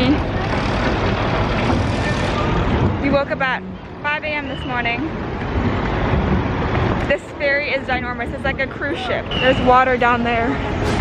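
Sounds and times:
vehicle and engine rumble: 0.0 - 11.0.

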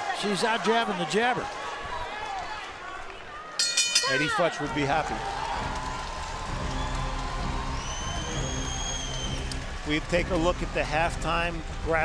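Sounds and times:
crowd background noise: 0.0 - 12.0.

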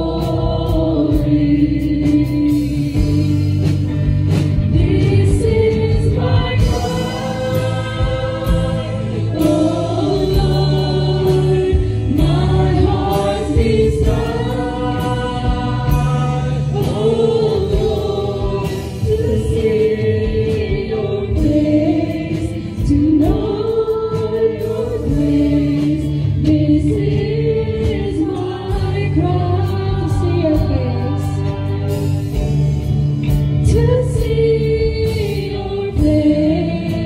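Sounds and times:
band with steady beat: 0.0 - 37.0
singers singing together: 0.0 - 37.0.

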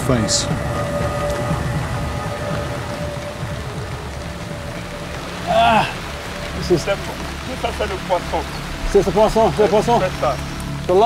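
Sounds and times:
heavy rain on water: 0.0 - 11.0.

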